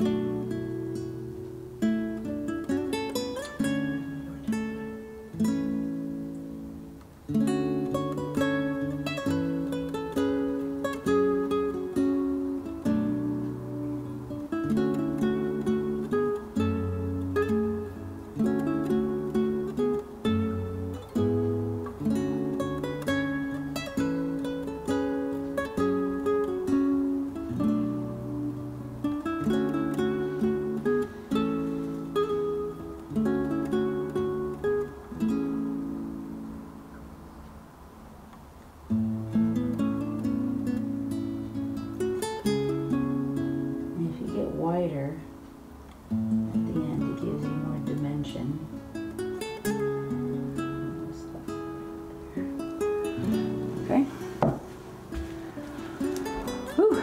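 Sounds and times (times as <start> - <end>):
acoustic guitar picking chords: 0.0 - 57.0.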